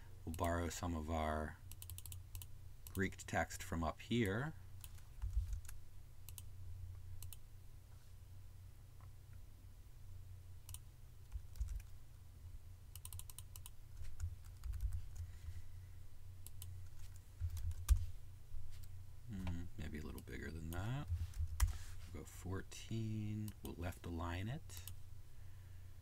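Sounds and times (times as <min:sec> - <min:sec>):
computer keyboard and mouse clicks: 0:01.7 - 0:03.0, 0:04.8 - 0:06.5, 0:10.7 - 0:11.9, 0:13.0 - 0:15.3.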